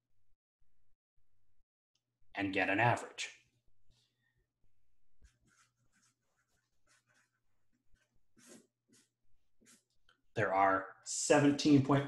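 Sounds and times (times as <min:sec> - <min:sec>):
marker scratching on paper: 0:05.2 - 0:10.0.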